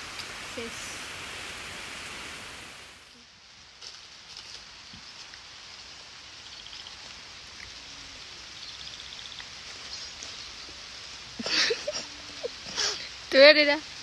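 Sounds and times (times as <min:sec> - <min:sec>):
steady hiss: 0:00.0 - 0:14.0.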